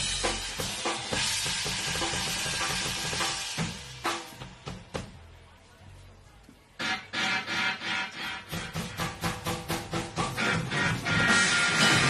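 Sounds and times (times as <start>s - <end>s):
distorted guitar: 6.8s - 9.3s, 10.1s - 12.0s
cymbals: 6.8s - 12.0s
drum hits: 8.2s - 12.0s.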